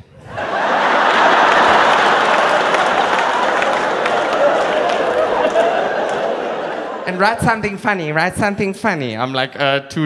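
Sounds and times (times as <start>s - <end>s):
audience laughing and applauding: 0.1s - 7.8s.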